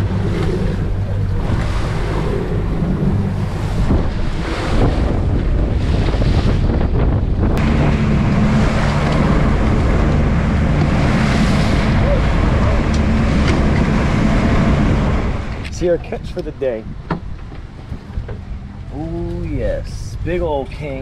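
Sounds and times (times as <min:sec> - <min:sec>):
water slapping at hull: 0:00.0 - 0:19.6
outboard engine running at speed: 0:00.0 - 0:21.0
wind buffeting microphone: 0:00.0 - 0:21.0.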